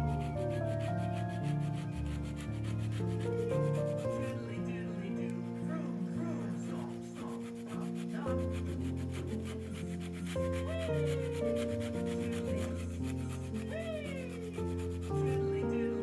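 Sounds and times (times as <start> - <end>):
soft background music: 0.0 - 16.0
grater rasping on peel: 7.0 - 15.4.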